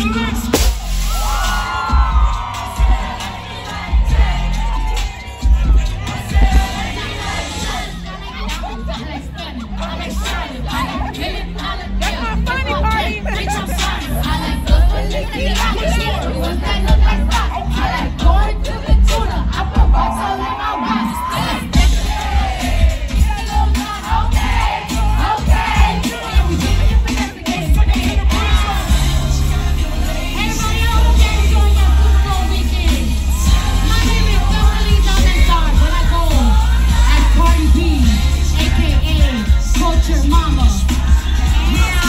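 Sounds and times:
crowd cheering and whooping: 0:00.0 - 0:12.5, 0:13.2 - 0:42.0
live concert music with pulsing bass: 0:00.0 - 0:42.0.

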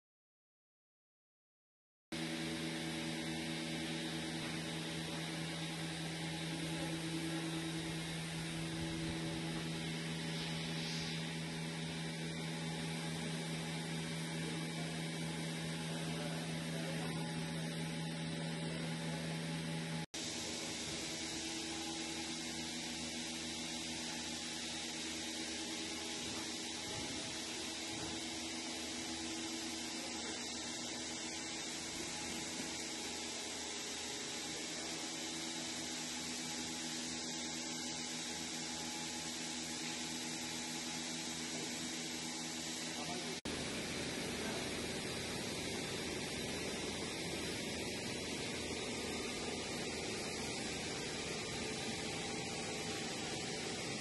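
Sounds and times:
milking machinery hum and hiss: 0:02.2 - 0:54.0.

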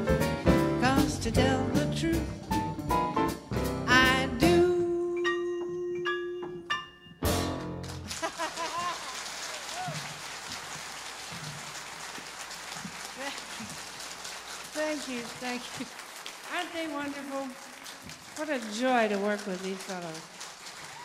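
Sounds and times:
jazz band playing: 0:00.0 - 0:06.4, 0:07.2 - 0:08.1
audience applause: 0:07.8 - 0:21.0.

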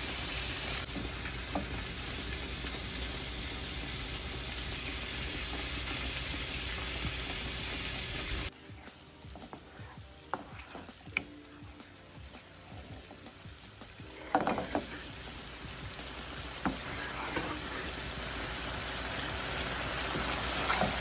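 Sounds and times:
vegetables sizzling in oil: 0:00.0 - 0:21.0.

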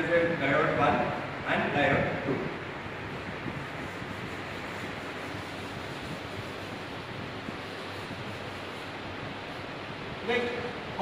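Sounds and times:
steady hissing room noise: 0:00.0 - 0:11.0.

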